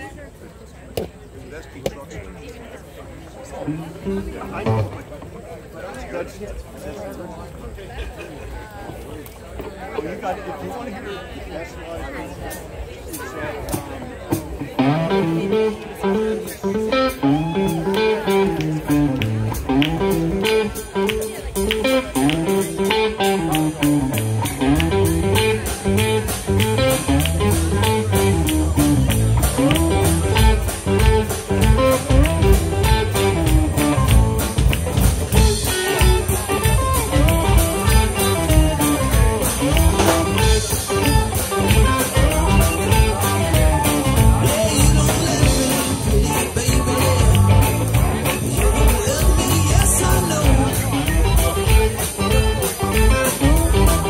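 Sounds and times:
blues-rock band playing: 3.7s - 5.1s, 13.6s - 54.0s
repeating guitar riff: 14.8s - 54.0s.

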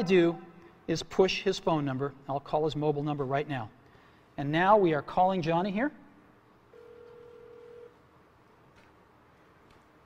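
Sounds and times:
phone ringback tone: 6.7s - 8.0s.

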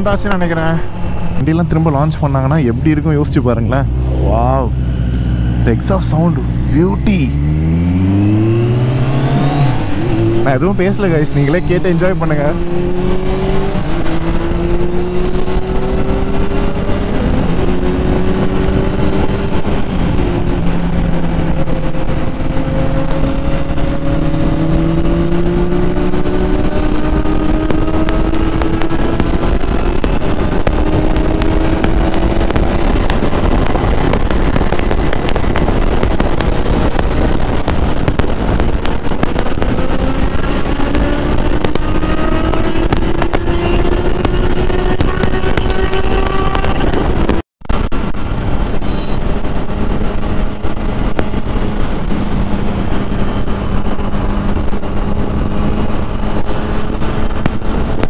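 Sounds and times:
motorcycle engine cruising: 0.0s - 58.0s
wind rumble on microphone: 0.0s - 58.0s.

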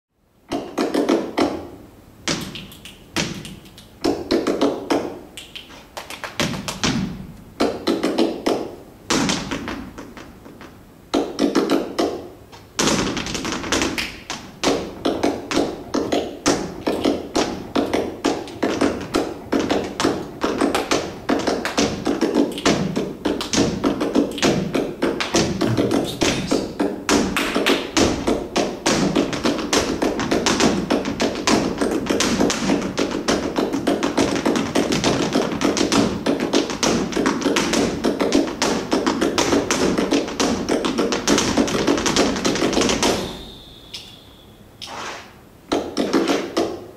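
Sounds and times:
heel stamps: 0.5s - 43.3s
dance shoes tapping floor: 0.5s - 44.2s, 44.8s - 46.9s.

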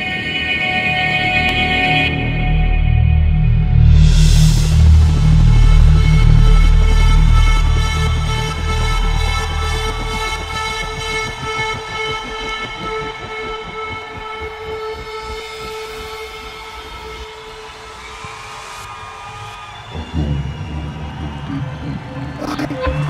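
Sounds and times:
low rumble: 1.5s - 14.6s
deep bass beat: 1.5s - 16.2s, 20.0s - 23.0s.

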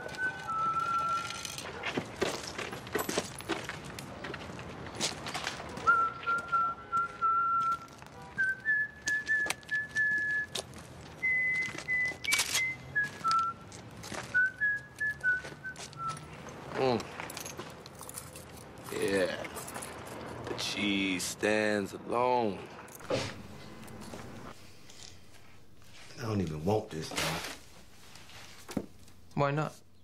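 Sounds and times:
man whistling a slow tune: 0.0s - 1.6s, 5.8s - 10.6s, 11.2s - 13.6s, 14.3s - 16.3s.

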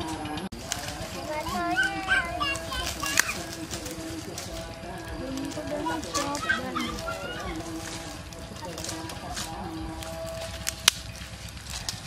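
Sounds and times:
children calling out: 0.6s - 12.0s.

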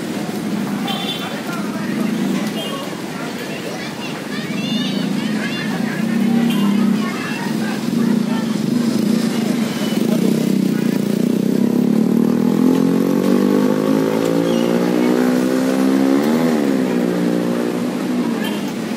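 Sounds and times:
street noise: 0.0s - 18.9s
vehicle engine revving: 4.9s - 18.9s.

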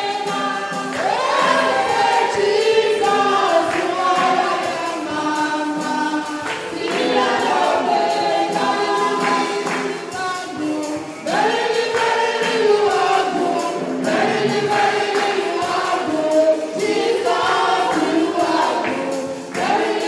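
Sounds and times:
light percussion: 0.0s - 20.0s
woman singing gospel song: 0.0s - 20.0s.

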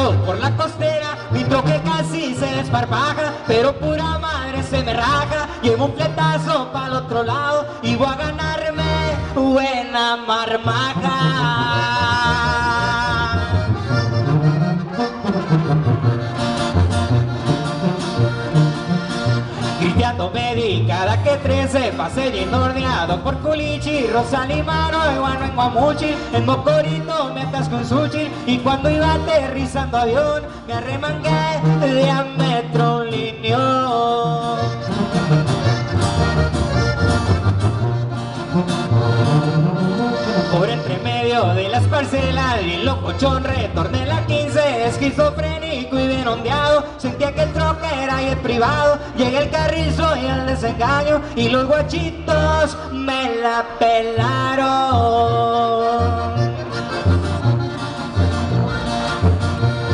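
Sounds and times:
button accordion melody: 0.0s - 9.7s, 10.5s - 59.9s
tuba bass notes: 0.0s - 9.8s, 10.4s - 59.9s
strummed acoustic guitar: 10.7s - 53.3s, 54.4s - 59.9s.

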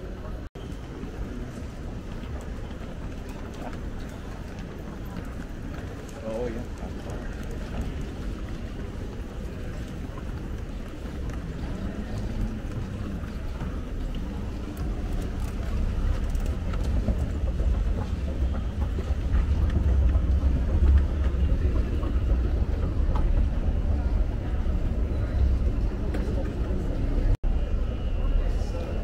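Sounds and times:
murmur of voices: 0.0s - 29.0s
escalator rumble: 1.3s - 29.0s.

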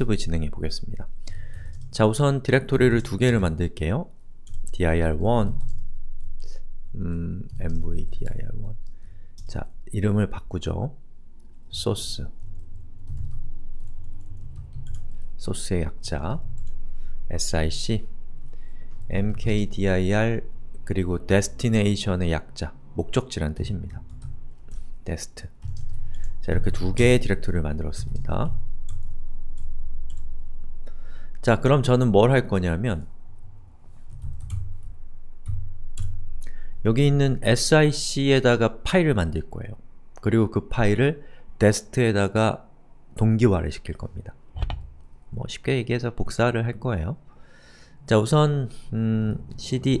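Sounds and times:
low steady hum: 0.0s - 50.0s
person speaking: 6.5s - 8.8s, 26.4s - 28.6s, 36.8s - 47.2s, 48.1s - 50.0s
typing on keyboard: 12.5s - 15.2s, 25.6s - 26.3s, 34.1s - 34.8s
computer mouse clicks: 44.6s - 44.9s
soft low thumps: 44.6s - 45.0s.

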